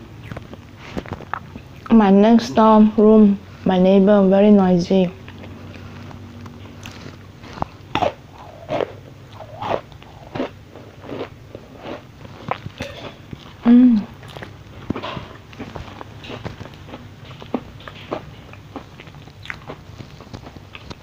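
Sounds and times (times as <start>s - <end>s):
chewing crunchy cookie: 0.0s - 2.0s, 5.2s - 21.0s.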